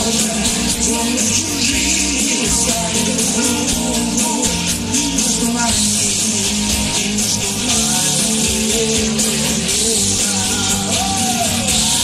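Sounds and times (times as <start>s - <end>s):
electric bass: 0.0s - 12.0s
person singing: 0.0s - 12.0s
pop-rock band playing: 0.0s - 12.0s
strummed guitar: 0.0s - 12.0s.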